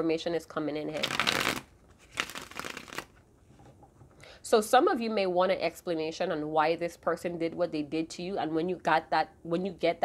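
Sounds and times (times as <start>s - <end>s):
cards shuffled by hand: 1.0s - 3.2s.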